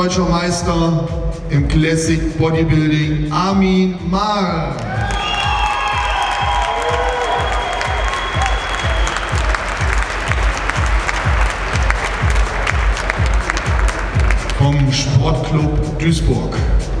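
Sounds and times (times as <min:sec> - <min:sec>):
music with thumping beat: 0:00.0 - 0:17.0
audience applauding: 0:04.8 - 0:14.9.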